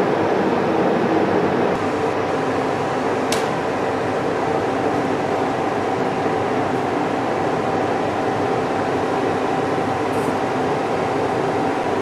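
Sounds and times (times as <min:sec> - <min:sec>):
gas blowtorch burning: 0:01.7 - 0:12.0.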